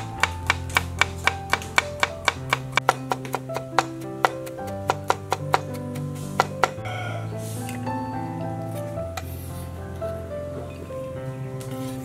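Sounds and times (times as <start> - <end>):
knife chopping on wooden board: 0.2 - 5.8.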